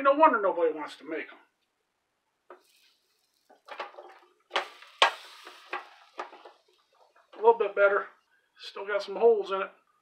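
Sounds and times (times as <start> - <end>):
hiss off hot plates: 2.5 - 7.3.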